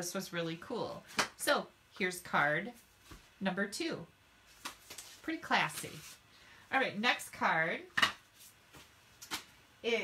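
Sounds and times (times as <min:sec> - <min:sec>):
woman speaking: 0:00.0 - 0:02.8, 0:03.4 - 0:04.1, 0:05.2 - 0:06.1, 0:06.7 - 0:08.0.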